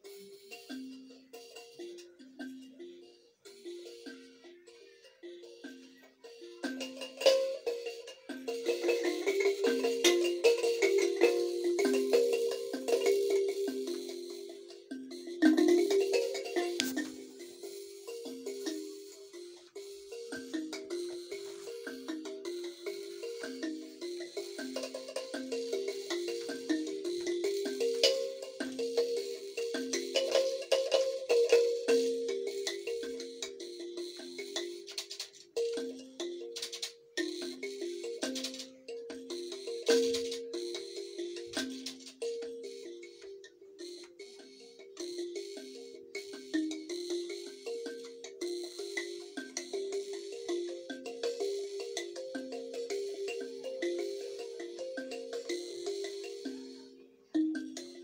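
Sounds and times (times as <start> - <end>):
thumb piano melody: 2.7 - 56.9.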